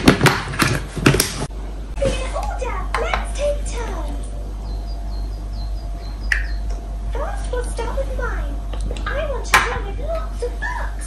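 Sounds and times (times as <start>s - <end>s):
small bird chirping: 3.8s - 6.9s.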